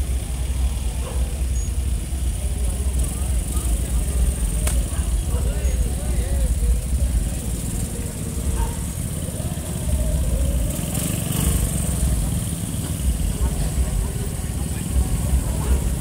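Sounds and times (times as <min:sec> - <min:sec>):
motor scooters riding past: 0:00.0 - 0:16.0.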